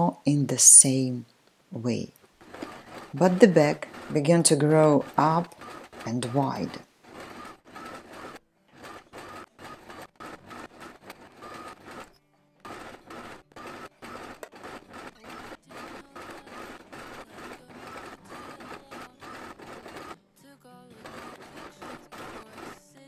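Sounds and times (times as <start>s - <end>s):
sewing machine stitching: 1.8s - 20.2s, 20.9s - 23.0s.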